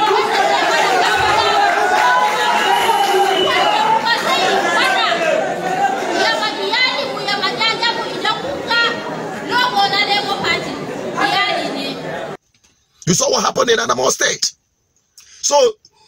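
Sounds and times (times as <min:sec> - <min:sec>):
crowd chatter: 0:00.0 - 0:12.4.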